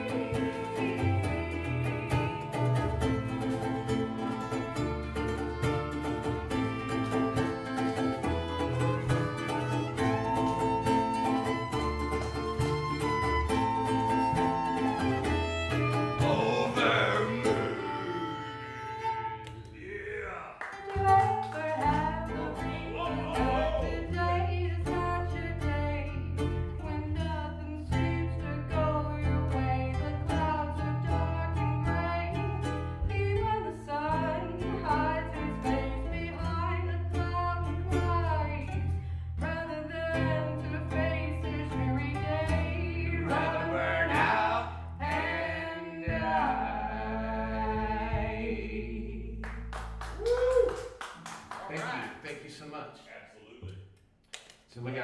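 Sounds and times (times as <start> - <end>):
person singing: 0.0 - 2.9, 13.2 - 38.8, 39.4 - 49.4
strummed acoustic guitar: 0.0 - 19.4, 20.8 - 48.1
violin melody: 0.0 - 19.8, 20.8 - 48.2.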